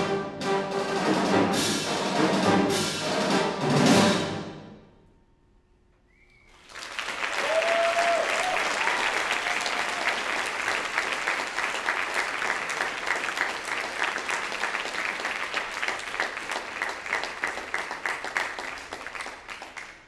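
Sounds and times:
audience applause: 0:06.5 - 0:20.0.

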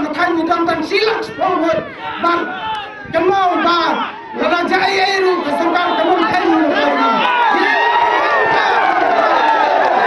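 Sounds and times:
crowd shouting a slogan: 0:00.3 - 0:10.0.

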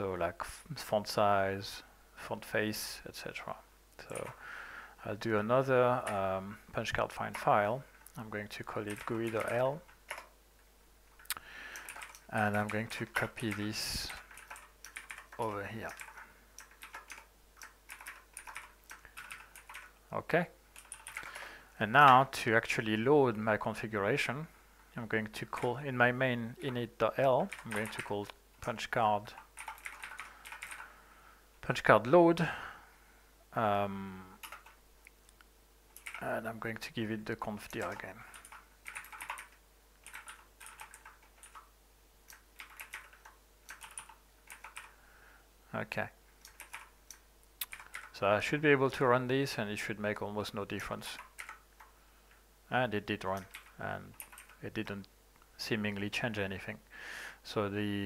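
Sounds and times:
computer keyboard clicks: 0:08.9 - 0:10.3, 0:11.3 - 0:12.8, 0:13.4 - 0:19.9, 0:20.8 - 0:21.4, 0:27.5 - 0:28.8, 0:29.4 - 0:30.8, 0:34.4 - 0:34.8, 0:36.0 - 0:36.2, 0:37.7 - 0:41.7, 0:42.3 - 0:44.9, 0:46.4 - 0:48.1, 0:51.2 - 0:51.9, 0:53.4 - 0:54.6.

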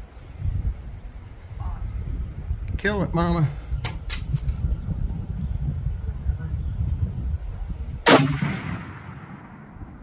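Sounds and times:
rifle shot: 0:08.0 - 0:10.0.

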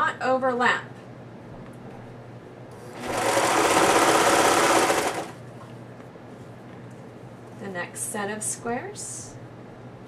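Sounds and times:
serger sewing machine running: 0:02.9 - 0:05.4.

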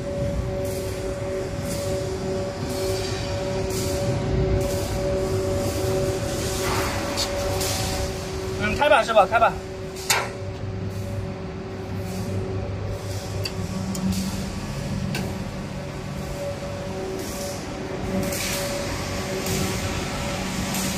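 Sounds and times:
electric motors humming: 0:00.0 - 0:20.9.

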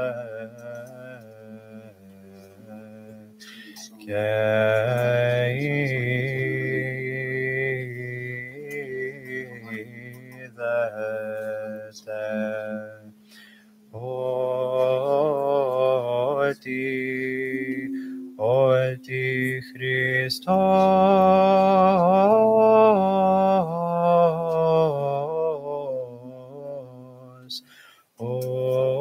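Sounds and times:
voices chanting: 0:00.0 - 0:23.6
low held drone note: 0:13.9 - 0:21.8.

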